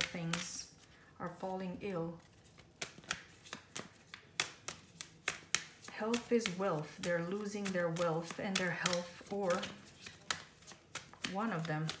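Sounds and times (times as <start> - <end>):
cards snapping while shuffled: 0.0 - 0.7, 2.3 - 12.0.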